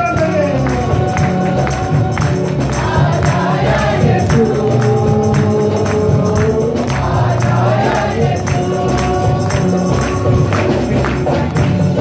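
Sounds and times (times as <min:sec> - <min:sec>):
acoustic guitar: 0:00.0 - 0:12.0
bass: 0:00.0 - 0:12.0
percussion beat: 0:00.0 - 0:12.0
voices singing along: 0:00.5 - 0:12.0
man singing into microphone: 0:04.1 - 0:07.0.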